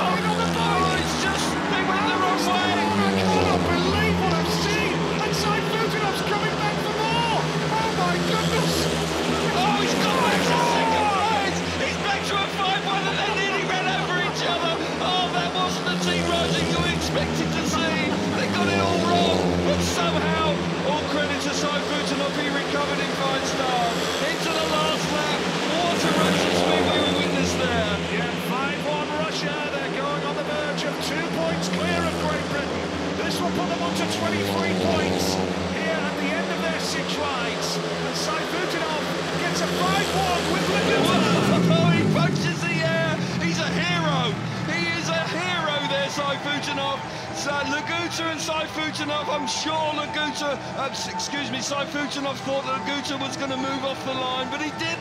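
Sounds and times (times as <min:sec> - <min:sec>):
motorcycle engines racing: 0:00.0 - 0:55.0.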